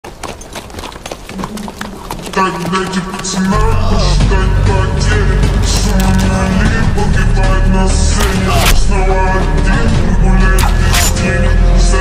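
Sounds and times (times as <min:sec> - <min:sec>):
horse hooves clip-clopping on dirt: 0:00.0 - 0:04.4.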